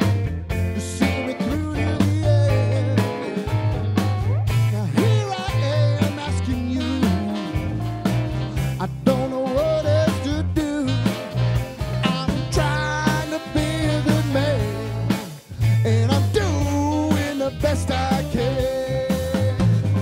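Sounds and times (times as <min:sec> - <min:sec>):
brass band playing funk: 0:00.0 - 0:20.0
drum kit steady beat: 0:00.0 - 0:20.0
sousaphone bass line: 0:00.0 - 0:20.0.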